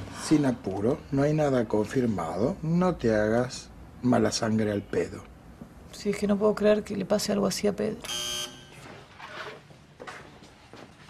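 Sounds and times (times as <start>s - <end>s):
faint room sounds: 0.0s - 11.0s
short electric buzzer: 8.0s - 8.8s.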